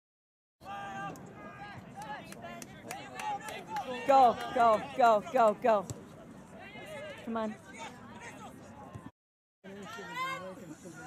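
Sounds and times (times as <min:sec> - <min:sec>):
spectators calling and chattering: 0:00.6 - 0:09.1, 0:09.7 - 0:11.0.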